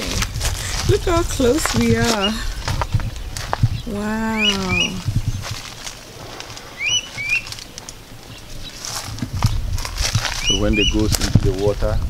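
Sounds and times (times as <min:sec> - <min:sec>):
low rustling: 0:00.0 - 0:12.0
bird chirps: 0:01.8 - 0:05.8, 0:06.6 - 0:11.8.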